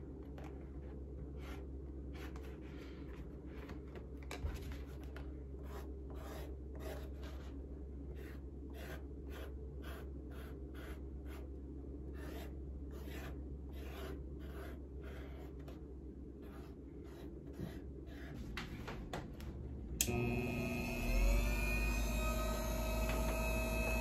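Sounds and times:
steady low hum: 0:00.0 - 0:24.0
marker scratching on leather: 0:01.3 - 0:02.8, 0:05.6 - 0:11.5, 0:12.1 - 0:15.8, 0:16.4 - 0:18.4.

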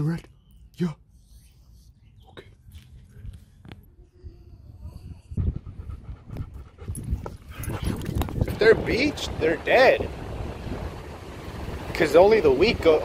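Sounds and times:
wind rumbling on microphone: 0:03.0 - 0:13.0
dog panting: 0:05.2 - 0:08.2.

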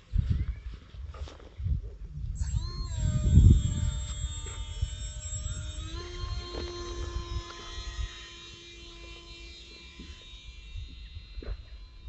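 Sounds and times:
wind buffeting microphone: 0:00.0 - 0:08.3
electric motor high whine: 0:02.3 - 0:12.0.

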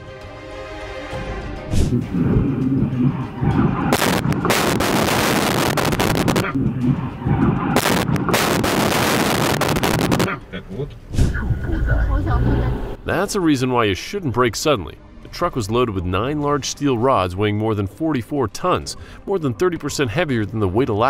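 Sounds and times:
burst of noise: 0:01.8 - 0:06.6, 0:07.6 - 0:10.3
low rumble: 0:01.8 - 0:10.3.

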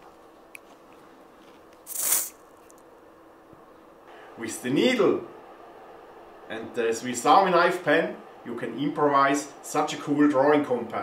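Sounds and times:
aerosol spray hiss: 0:01.9 - 0:02.4.

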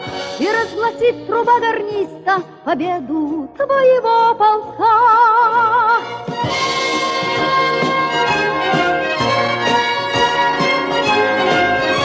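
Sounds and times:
orchestral accompaniment: 0:00.0 - 0:02.5, 0:05.6 - 0:12.0.

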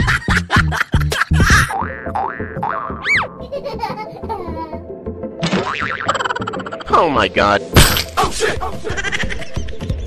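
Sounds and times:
background music: 0:00.0 - 0:10.0
cartoon boing sound effects: 0:01.5 - 0:03.4, 0:05.4 - 0:06.7.

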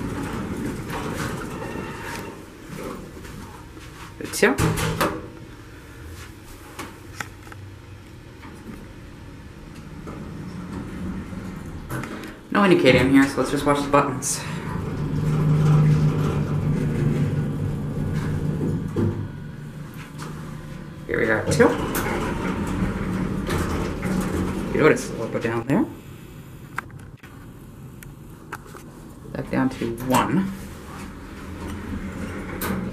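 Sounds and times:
elevator door closing: 0:00.0 - 0:03.6, 0:04.4 - 0:05.5, 0:08.3 - 0:26.0, 0:29.3 - 0:32.9
hydraulic pump hum: 0:08.6 - 0:26.8.

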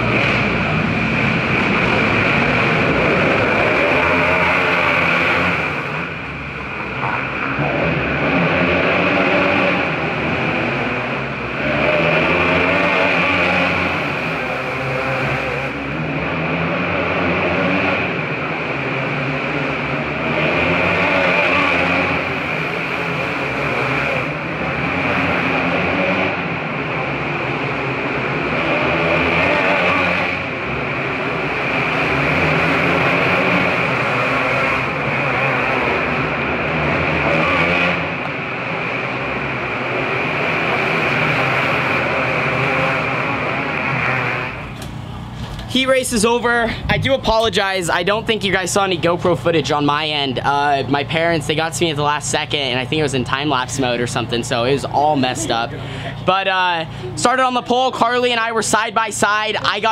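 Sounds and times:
kart engines racing: 0:00.0 - 0:59.9.

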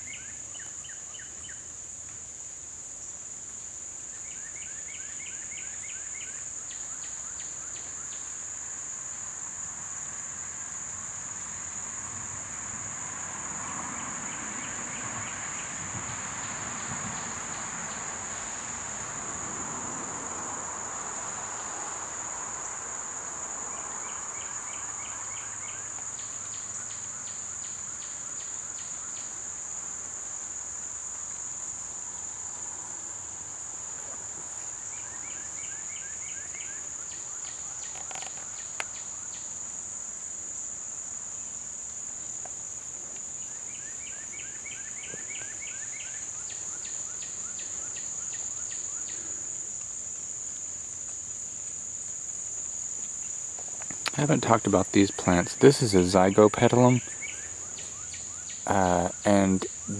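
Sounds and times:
insects droning: 0:00.0 - 0:59.9
rapid insect chirps: 0:00.0 - 0:59.9.

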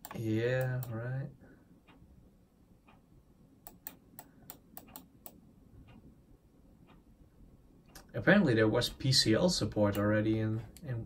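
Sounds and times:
faint sharp computer clicks: 0:00.0 - 0:01.2, 0:03.6 - 0:06.0.

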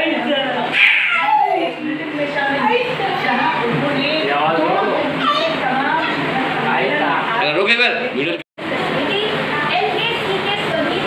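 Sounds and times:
toddler squealing and babbling: 0:00.7 - 0:01.7, 0:05.2 - 0:06.2.

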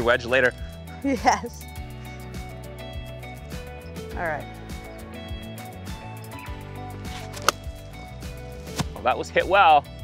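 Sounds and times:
background music: 0:00.0 - 0:10.0
golf club striking ball: 0:07.1 - 0:08.0.

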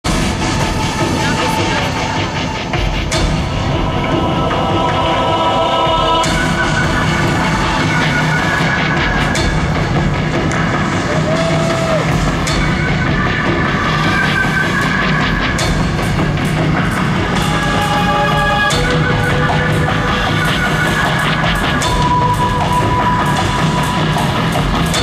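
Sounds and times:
live rock band playing: 0:00.1 - 0:25.0.

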